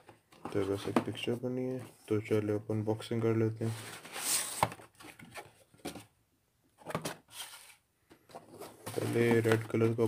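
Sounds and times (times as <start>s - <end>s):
cardboard sliding scrape: 3.6s - 4.7s, 7.3s - 7.8s.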